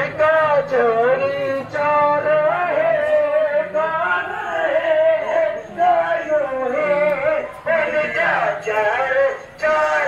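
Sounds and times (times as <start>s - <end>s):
man singing devotional song: 0.0s - 10.0s.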